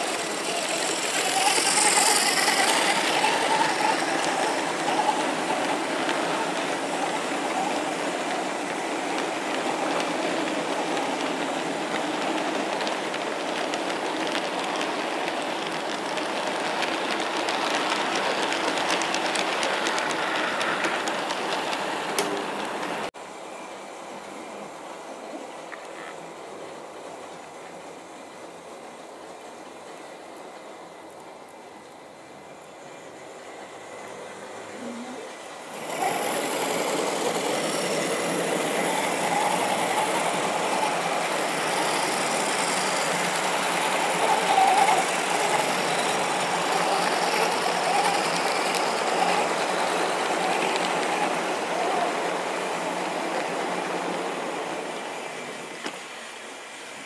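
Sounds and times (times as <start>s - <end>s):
model train running on track: 0.0s - 57.0s.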